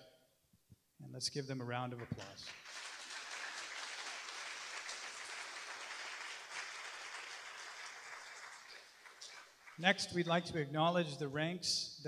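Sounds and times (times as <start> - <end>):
audience applauding: 2.2 - 9.9.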